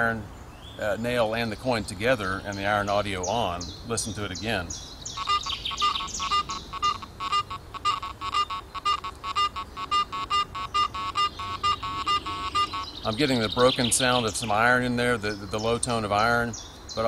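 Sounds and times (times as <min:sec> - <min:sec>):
birds chirping: 0:00.0 - 0:17.0
metal detector beeping: 0:05.2 - 0:13.2.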